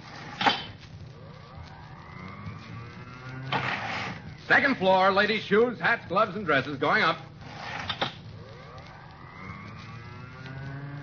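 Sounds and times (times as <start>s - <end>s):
elevator rising whine: 0.0s - 4.6s, 7.4s - 11.0s.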